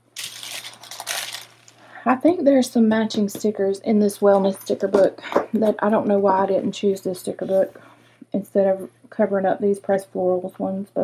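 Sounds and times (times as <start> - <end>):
paper pages rustling: 0.2 - 1.8.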